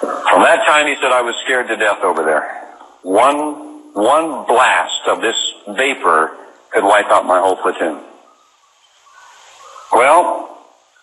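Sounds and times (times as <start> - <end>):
man speaking: 0.0 - 8.2, 9.9 - 10.6
faint background noise: 0.0 - 11.0.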